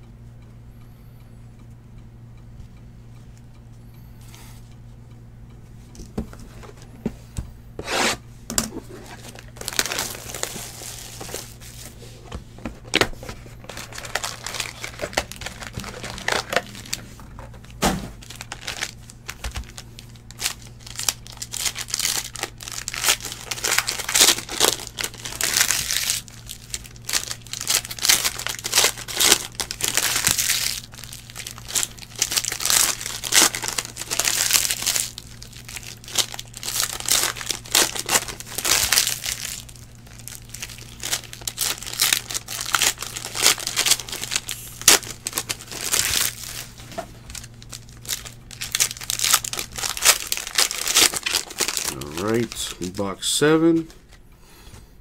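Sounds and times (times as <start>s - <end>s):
plastic wrappers crinkling and tearing: 8.8s - 53.1s.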